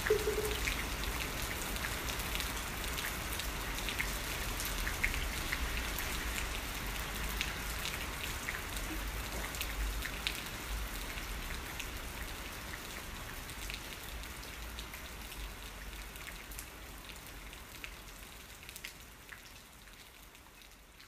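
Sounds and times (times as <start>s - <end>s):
steady rain: 0.0s - 21.0s.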